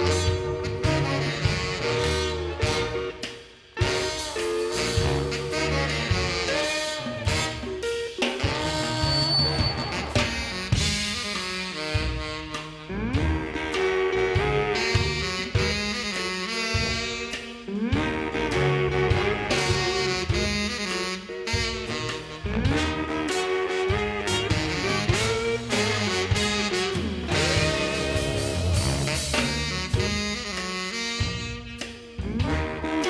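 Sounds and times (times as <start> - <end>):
sliding bass line: 0.0 - 3.2, 3.8 - 33.0
saxophones: 0.0 - 33.0
steady drums: 0.0 - 33.0
trumpet leading: 0.0 - 33.0.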